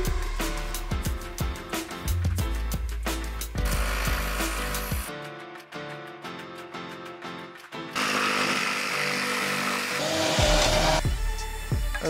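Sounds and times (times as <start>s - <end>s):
background music with deep bass: 0.0s - 8.0s, 8.8s - 12.0s
jigsaw cutting plywood: 3.6s - 5.1s, 7.9s - 11.0s.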